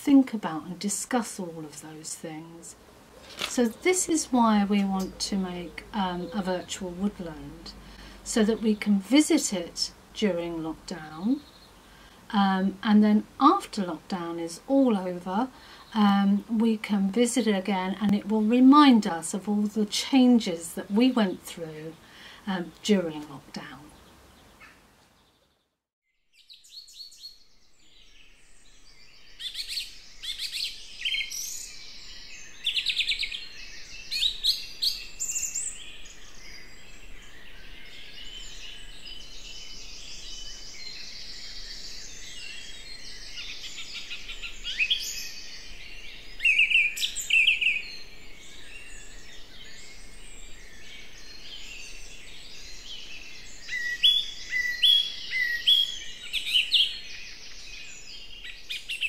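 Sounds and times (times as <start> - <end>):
faint steady background hiss: 0.0 - 59.0
birds chirping and trilling: 0.1 - 59.0.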